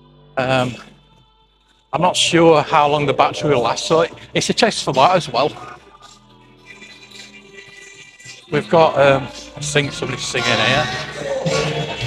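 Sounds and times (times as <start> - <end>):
steady droning tone: 0.0 - 12.0
person singing long notes: 2.0 - 6.0, 8.5 - 12.0.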